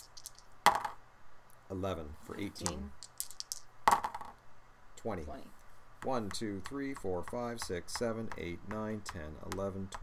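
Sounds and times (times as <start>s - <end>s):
dice clattering on board: 0.0s - 1.0s, 2.6s - 4.4s.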